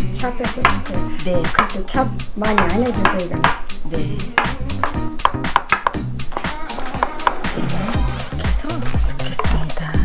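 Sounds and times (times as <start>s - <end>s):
background music with bass line: 0.0s - 10.0s
knife chopping on wooden board: 0.6s - 1.8s, 2.4s - 3.7s, 4.3s - 8.1s.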